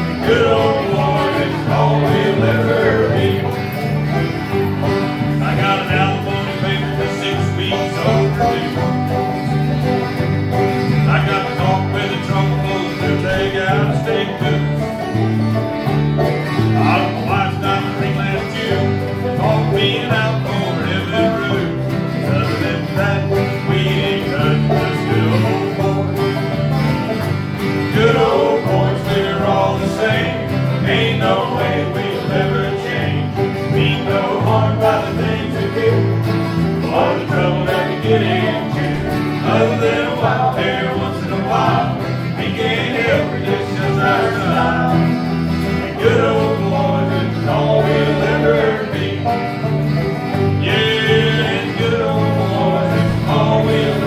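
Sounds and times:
acoustic guitars: 0:00.0 - 0:54.0
banjo: 0:00.0 - 0:54.0
bass line: 0:00.0 - 0:54.0
mandolin: 0:00.0 - 0:54.0.

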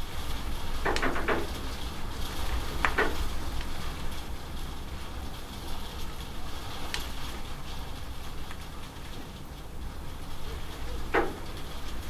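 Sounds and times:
heavy rain on corrugated roof: 0:00.0 - 0:12.0.

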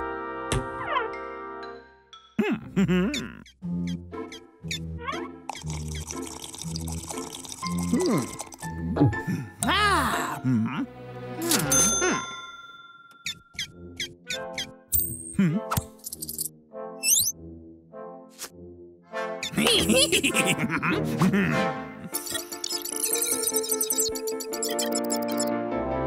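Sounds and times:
bouncy cartoon music: 0:00.5 - 0:12.5, 0:13.2 - 0:26.0
character humming and grunting: 0:02.4 - 0:03.5, 0:07.8 - 0:12.3.

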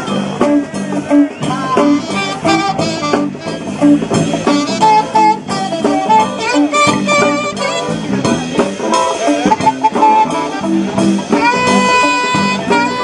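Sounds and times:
instrumental band music: 0:00.0 - 0:13.0.

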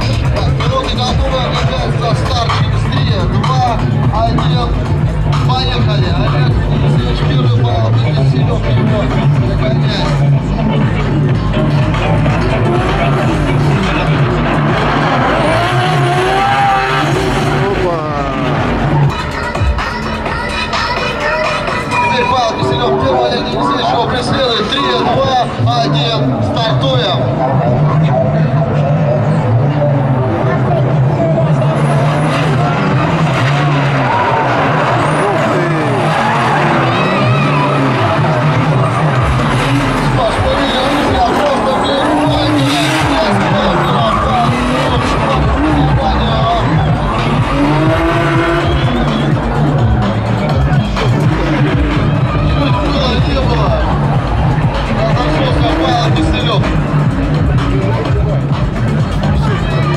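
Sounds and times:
car engines revving high: 0:00.0 - 0:59.9.

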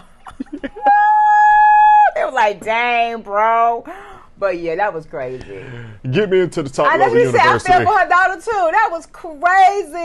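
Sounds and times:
person laughing: 0:00.2 - 0:01.8
high-pitched squeal of laughter: 0:00.4 - 0:02.2.

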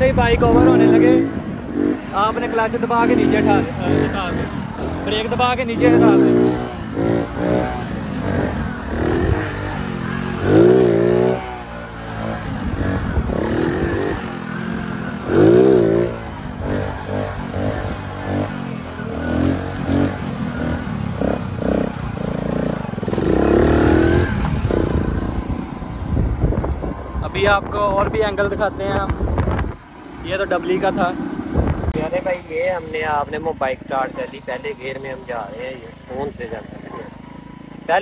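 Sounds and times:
motorcycle engine revving: 0:00.0 - 0:38.0.

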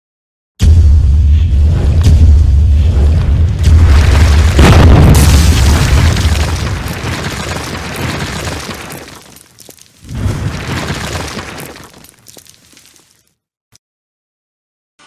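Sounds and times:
deep rumbling boom: 0:00.6 - 0:08.1
wall crashing down: 0:03.6 - 0:09.4.

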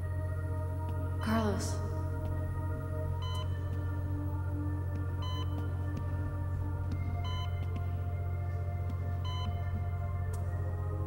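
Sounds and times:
ambient synthesizer drone: 0:00.0 - 0:11.0.

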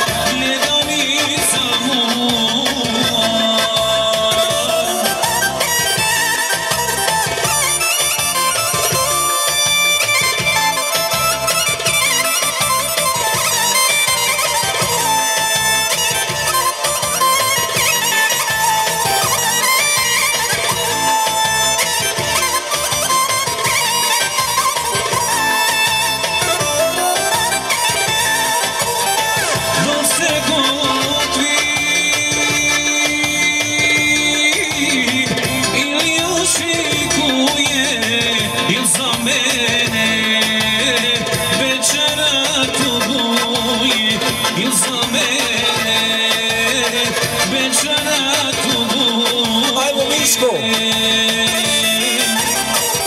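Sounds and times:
steady drum beat: 0:00.0 - 0:53.0
wind instrument melody: 0:04.2 - 0:42.4, 0:43.0 - 0:53.0.

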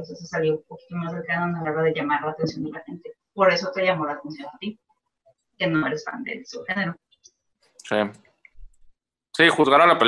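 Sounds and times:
person speaking a word: 0:07.9 - 0:08.1.

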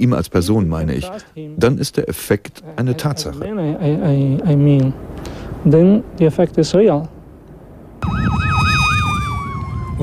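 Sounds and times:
fire truck siren warble: 0:08.0 - 0:10.0
siren tone sliding down: 0:08.0 - 0:10.0.

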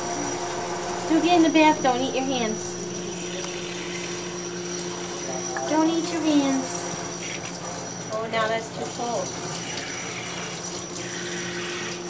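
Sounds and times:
steady hum: 0:00.0 - 0:08.4.

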